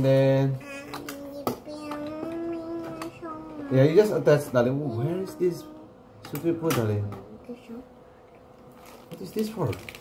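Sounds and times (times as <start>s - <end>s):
child singing a long note: 0.8s - 3.8s.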